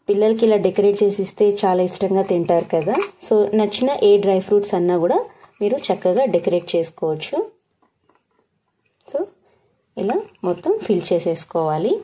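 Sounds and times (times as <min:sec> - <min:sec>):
person talking: 0:00.0 - 0:07.6, 0:10.0 - 0:12.0.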